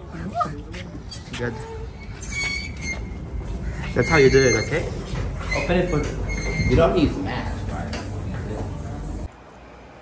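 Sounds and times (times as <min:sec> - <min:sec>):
door squealing open: 0:01.1 - 0:07.1.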